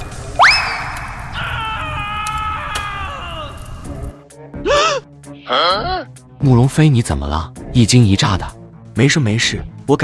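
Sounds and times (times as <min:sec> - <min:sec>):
person crying out in fright: 0:01.4 - 0:03.8, 0:04.6 - 0:06.1.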